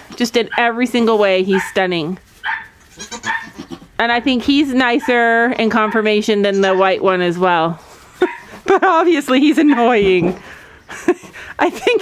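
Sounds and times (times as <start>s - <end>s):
goat bleating: 2.8s - 4.0s, 6.3s - 6.9s.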